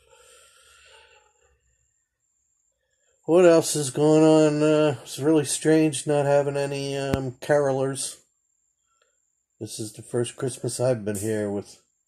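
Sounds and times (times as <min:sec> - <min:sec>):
man breathing faintly: 0:00.0 - 0:01.6.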